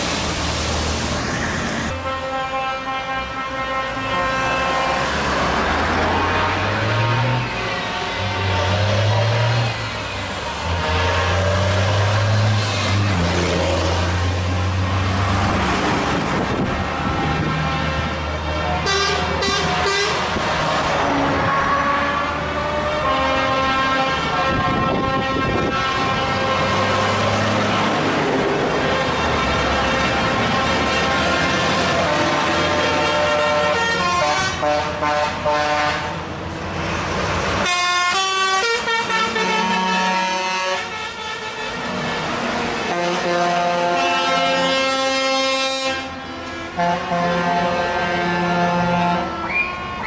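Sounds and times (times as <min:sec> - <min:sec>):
truck engines rumbling: 0:00.0 - 0:50.0
vehicle horns honking: 0:01.9 - 0:05.4, 0:17.1 - 0:20.4, 0:21.2 - 0:27.1, 0:28.8 - 0:36.2, 0:37.6 - 0:50.0.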